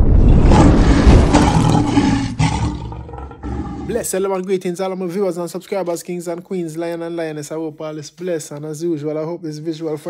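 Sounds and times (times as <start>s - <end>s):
lion roaring: 0.0s - 4.0s.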